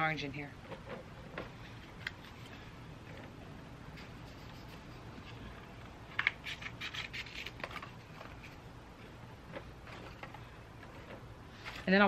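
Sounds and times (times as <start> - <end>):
scissors cutting cardboard: 6.2 - 7.9
cardboard handling: 6.2 - 12.0.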